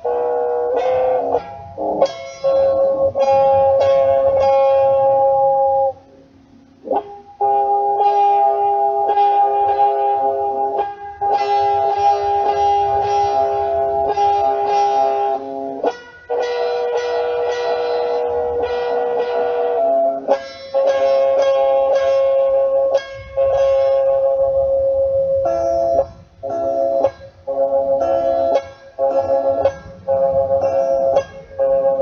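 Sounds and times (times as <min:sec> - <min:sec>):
held instrumental chords: 0:00.0 - 0:32.0.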